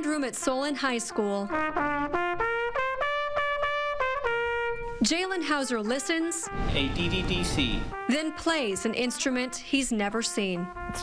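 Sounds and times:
trumpet playing short phrase: 1.1s - 11.0s.

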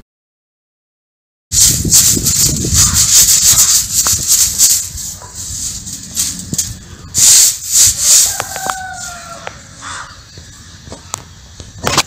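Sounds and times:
tools scraping damp sand: 1.5s - 9.6s.

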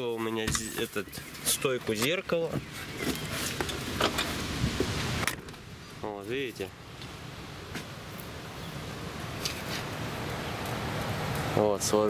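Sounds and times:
low rumble and hiss: 3.6s - 12.0s.

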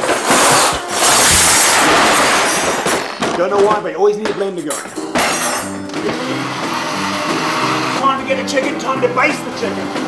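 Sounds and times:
blender running: 5.9s - 8.0s.

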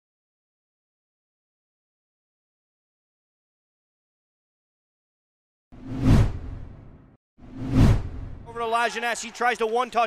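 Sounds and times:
whoosh with low boom: 5.8s - 8.5s.

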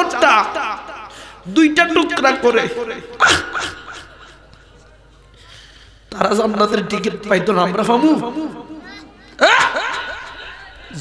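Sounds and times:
man weeping and sobbing: 0.0s - 1.4s, 9.3s - 11.0s.

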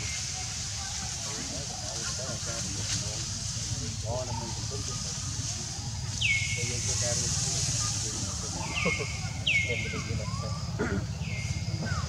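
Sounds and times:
high-pitched hiss: 0.0s - 12.0s
indistinct voices talking quietly: 0.0s - 12.0s.

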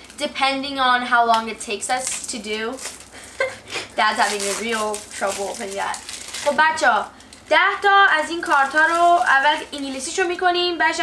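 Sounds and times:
person talking: 4.0s - 11.0s.

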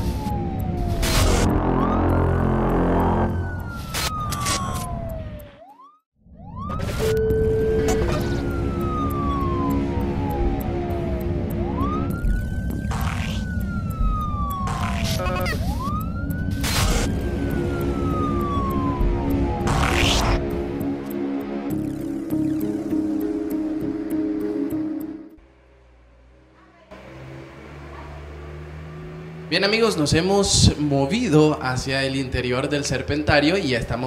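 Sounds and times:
siren wailing: 0.0s - 25.4s, 26.6s - 31.9s.

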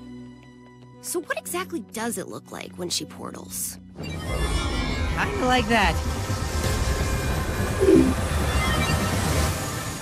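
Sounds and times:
background music: 0.0s - 10.0s
short falling tone: 7.8s - 8.2s.

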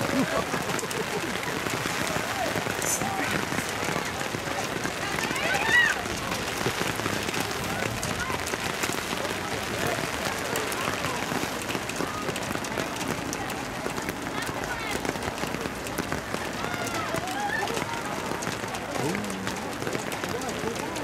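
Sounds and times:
rain hissing: 0.0s - 11.8s
distant voices calling out: 17.0s - 20.2s.

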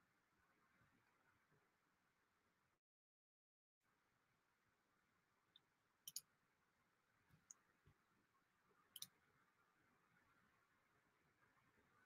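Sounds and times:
faint short clicks: 6.0s - 6.3s.

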